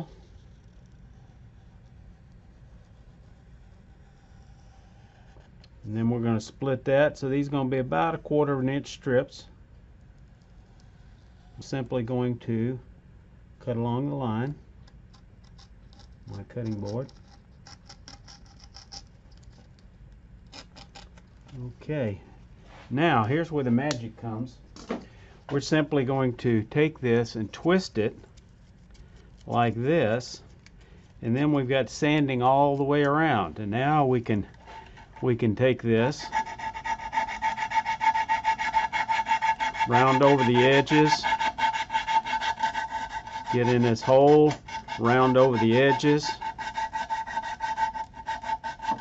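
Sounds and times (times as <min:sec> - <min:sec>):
sandpaper rasping on wood: 0:36.1 - 0:49.0.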